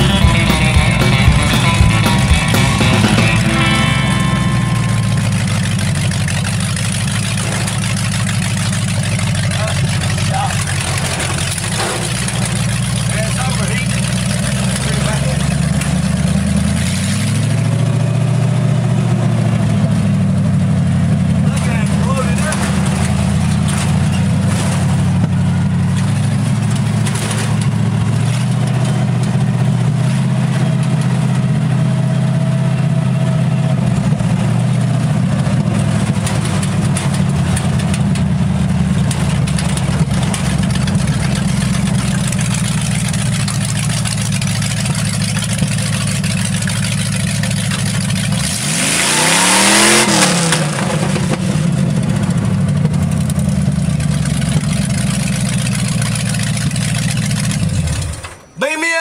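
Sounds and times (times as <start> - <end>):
truck engine running: 0.0 - 59.0.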